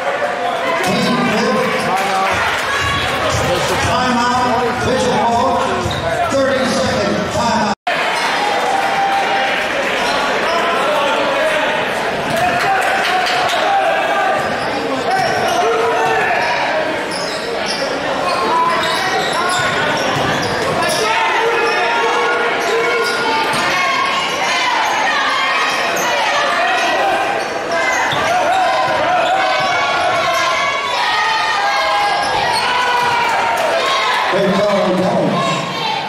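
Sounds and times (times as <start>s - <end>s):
crowd voices echoing: 0.0s - 36.0s.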